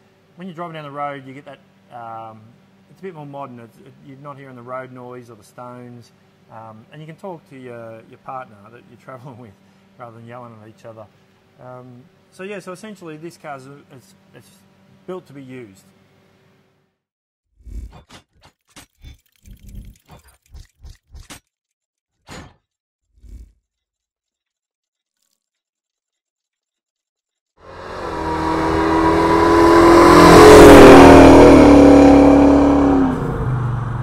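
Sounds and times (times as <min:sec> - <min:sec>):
car driving past: 0:27.6 - 0:34.0.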